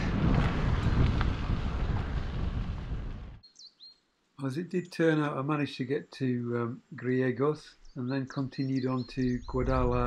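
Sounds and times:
bicycle tyres on gravel: 0.0 - 3.4
wind buffeting microphone: 0.0 - 3.4, 9.2 - 10.0
faint high chirp: 3.4 - 4.0.

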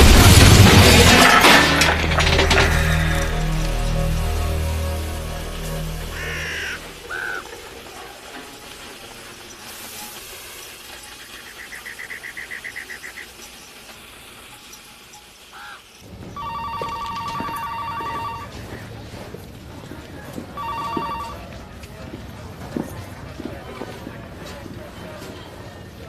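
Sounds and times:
bird trill: 5.6 - 7.5
telephone ringing: 16.3 - 18.8, 20.6 - 21.7.

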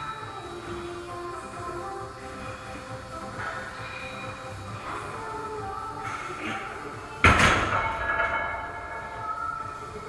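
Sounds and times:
metal barbell clank and ringing: 7.5 - 8.8.

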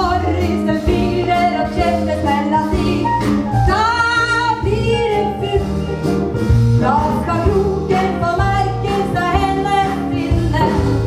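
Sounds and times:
instrumental accompaniment with bass: 0.0 - 11.0.

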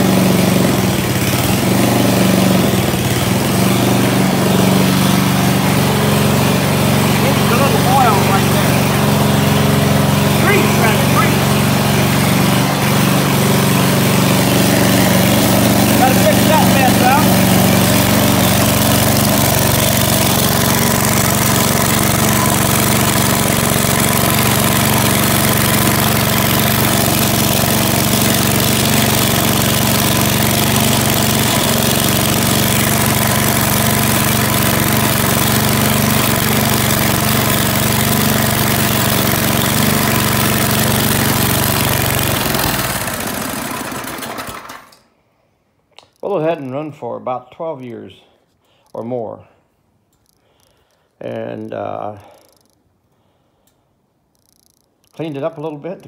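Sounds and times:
small engine running: 0.0 - 45.1, 50.2 - 53.6, 54.3 - 56.0.

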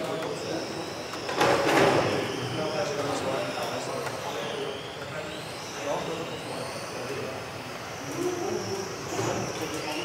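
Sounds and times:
hum of hall: 0.0 - 10.0
model car motors whining: 0.0 - 10.0.

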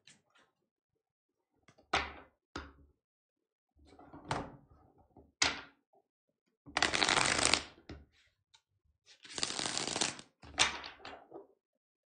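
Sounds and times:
cards shuffling rustle: 6.8 - 7.6, 9.2 - 10.2.

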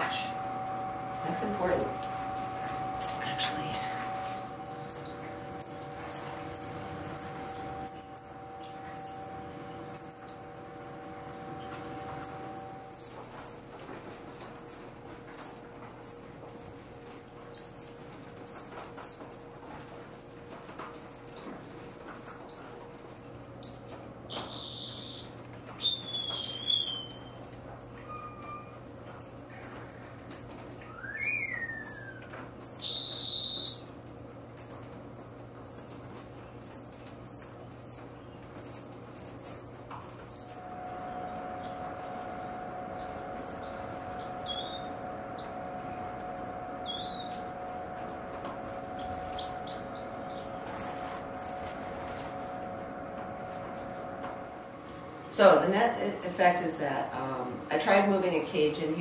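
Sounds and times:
finches chirping: 0.0 - 19.5, 22.2 - 28.6, 31.1 - 52.5, 53.9 - 54.5, 55.6 - 59.0
sliding bird calls: 0.0 - 19.5, 22.2 - 33.8, 34.6 - 55.2.

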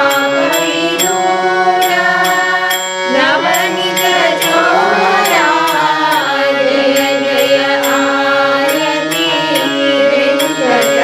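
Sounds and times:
held instrumental drone: 0.0 - 11.0
woman singing a devotional chant: 0.0 - 11.0.

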